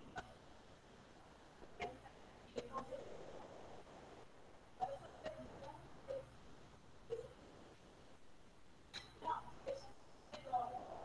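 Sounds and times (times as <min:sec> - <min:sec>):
online class audio feed: 0:00.0 - 0:11.0.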